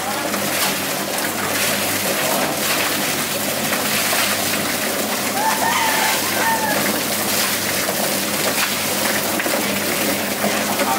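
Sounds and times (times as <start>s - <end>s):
chickens slapping in plucker drum: 0.2s - 10.9s
water spray splashing: 0.3s - 10.9s.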